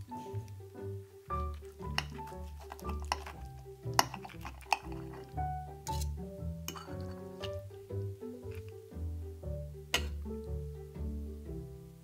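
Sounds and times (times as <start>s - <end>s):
background music with bass line: 0.0s - 12.0s.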